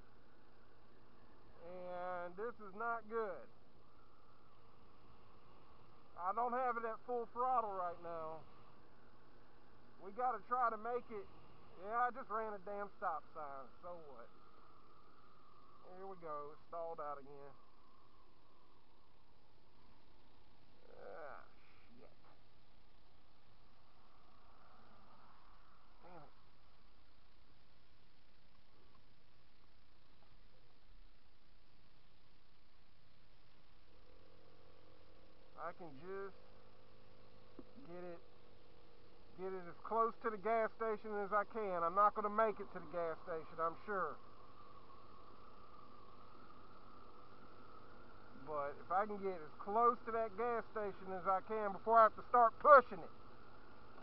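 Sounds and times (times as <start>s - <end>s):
wind and road noise: 0.0s - 20.8s, 22.4s - 54.0s
scooter engine drone: 0.0s - 54.0s.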